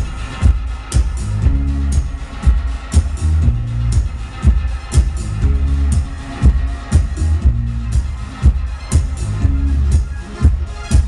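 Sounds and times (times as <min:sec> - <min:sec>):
deep bass line: 0:00.0 - 0:11.0
kick drum beat: 0:00.0 - 0:11.0.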